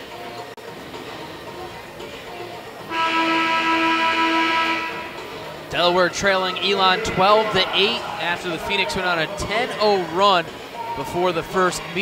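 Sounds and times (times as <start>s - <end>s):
faint arena music: 0.0s - 12.0s
arena horn blast: 2.9s - 5.3s.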